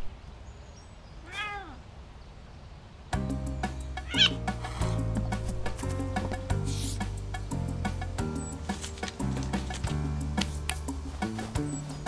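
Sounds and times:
cat meowing: 1.2 - 1.8, 4.0 - 4.4.

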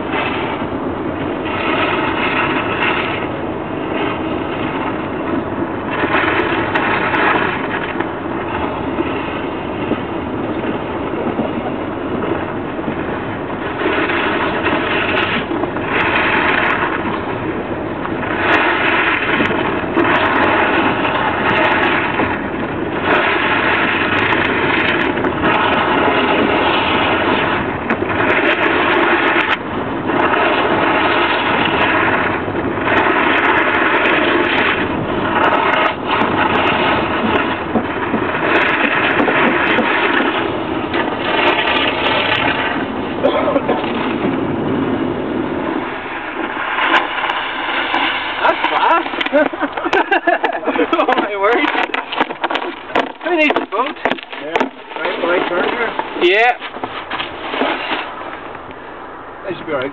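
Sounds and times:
car driving on snowy road: 0.0 - 59.9.

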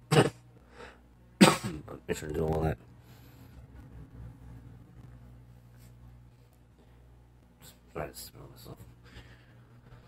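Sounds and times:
man coughing: 0.1 - 0.4, 1.4 - 1.9.

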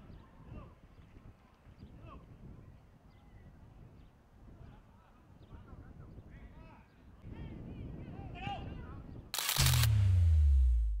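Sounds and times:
sharp burst of noise: 9.4 - 11.0
deep bass tone sliding down: 9.6 - 11.0.

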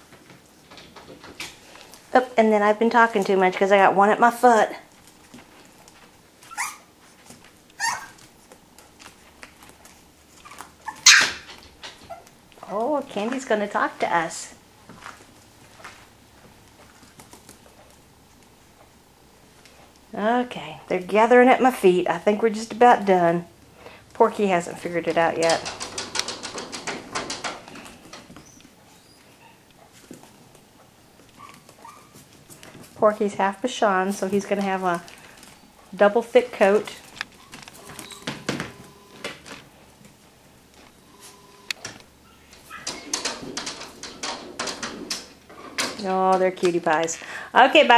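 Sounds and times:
puppy yipping: 6.4 - 6.9, 7.8 - 8.2, 10.4 - 11.5, 31.4 - 32.2.

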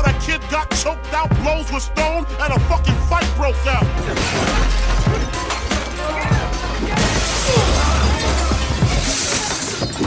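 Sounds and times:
hip-hop beat with deep bass: 0.0 - 9.0
glass shattering: 4.0 - 10.0.

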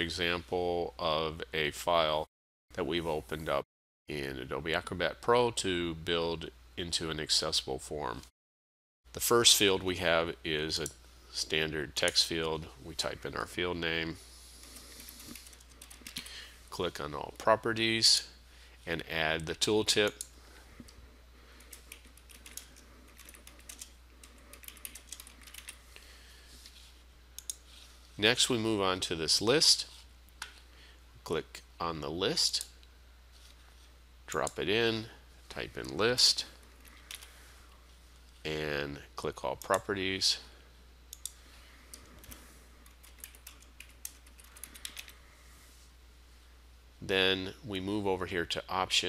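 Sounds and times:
typing on computer keyboard: 15.3 - 16.3, 21.7 - 25.8, 42.2 - 45.2.

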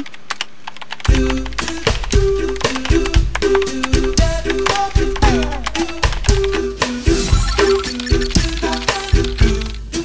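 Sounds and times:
keyboard typing clicks: 7.3 - 9.7.

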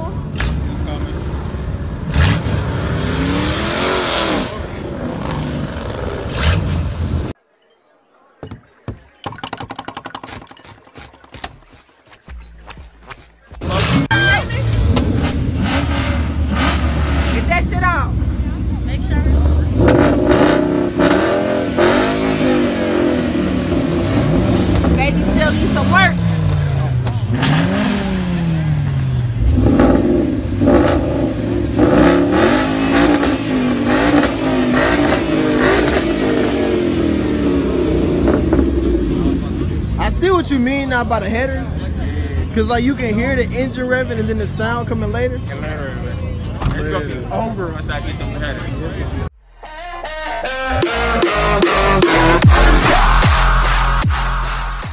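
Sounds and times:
car engine revving: 0.0 - 7.4, 13.6 - 54.9.

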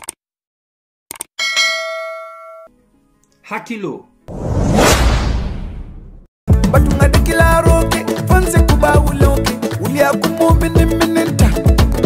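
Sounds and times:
notification bell ding: 1.4 - 2.7.

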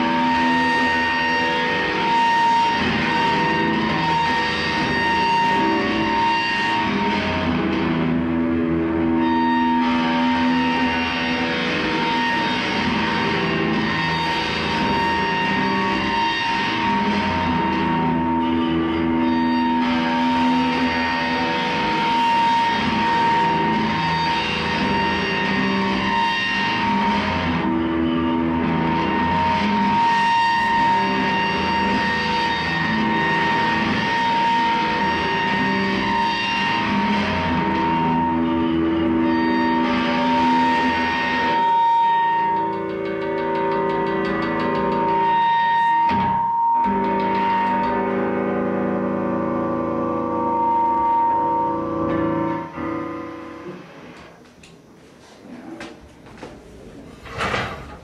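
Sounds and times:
loud electric guitar drone: 0.0 - 54.8
low sustained guitar notes: 0.0 - 54.9
steady high guitar tone: 0.0 - 55.8.

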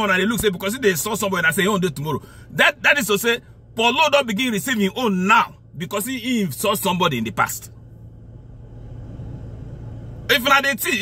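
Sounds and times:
car cabin rumble: 0.0 - 11.0.

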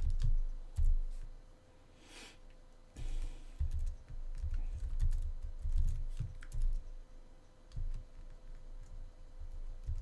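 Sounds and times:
typing on computer keyboard: 0.0 - 1.2, 3.6 - 6.9, 7.7 - 10.0.

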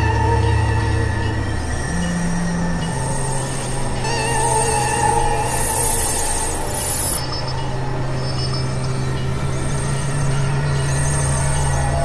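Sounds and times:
low synthesizer drone: 0.0 - 12.0.

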